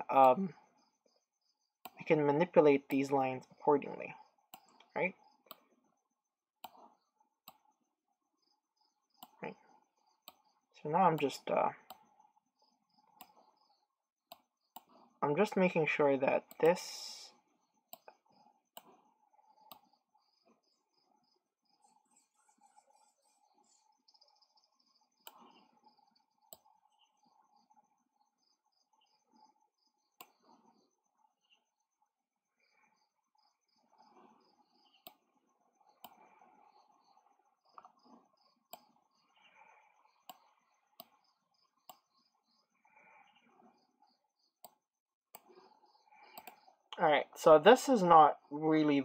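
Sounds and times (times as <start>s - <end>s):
computer mouse clicking: 4.5s - 5.7s, 9.1s - 10.5s, 11.1s - 15.0s, 16.5s - 16.8s, 17.9s - 20.0s, 25.2s - 27.7s, 30.2s - 30.8s, 35.9s - 39.0s, 40.1s - 42.3s, 44.6s - 46.7s.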